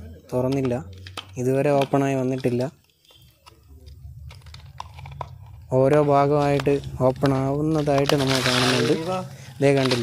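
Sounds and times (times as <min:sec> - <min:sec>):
man talking: 0:05.7 - 0:10.0.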